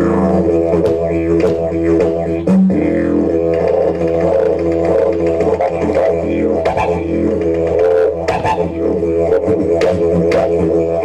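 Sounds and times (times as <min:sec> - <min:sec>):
didgeridoo drone: 0:00.0 - 0:11.0.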